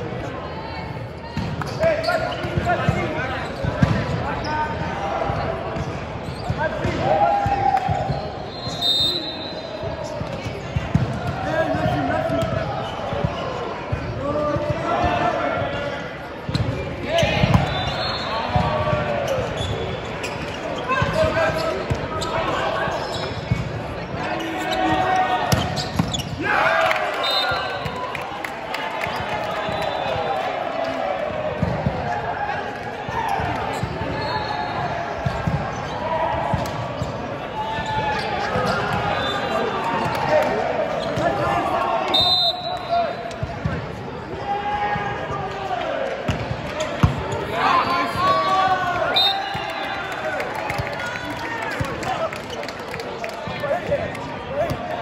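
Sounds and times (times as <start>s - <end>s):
players shouting: 24.1s - 43.4s, 44.2s - 52.5s.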